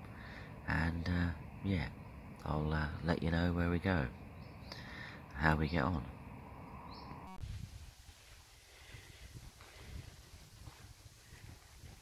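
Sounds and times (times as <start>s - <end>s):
wind rumble on microphone: 6.1s - 12.0s.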